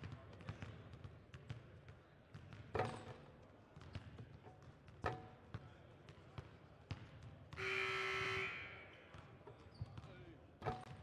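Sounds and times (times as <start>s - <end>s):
basketballs bouncing on gym floor: 0.0s - 1.7s, 2.3s - 2.7s, 3.8s - 7.6s
loud buzzer tone: 7.6s - 8.6s.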